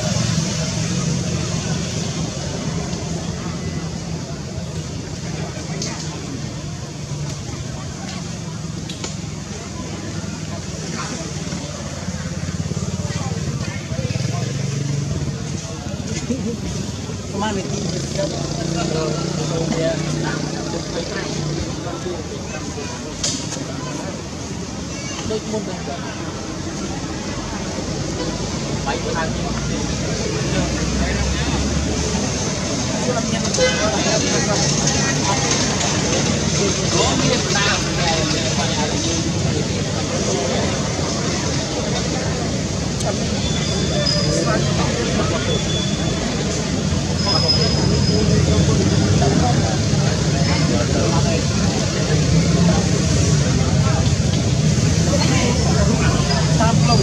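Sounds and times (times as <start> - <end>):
dense background noise: 0.0 - 57.0
indistinct voices: 0.0 - 57.0.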